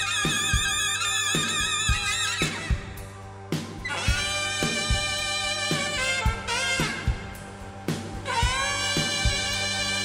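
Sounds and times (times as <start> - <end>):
live band playing: 0.0 - 10.0
saxophone bending line: 0.0 - 10.0
drum hits: 3.6 - 9.8.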